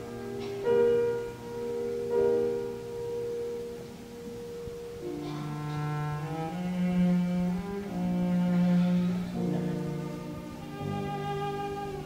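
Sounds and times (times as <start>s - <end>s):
high cello and piano note: 0.0s - 12.0s.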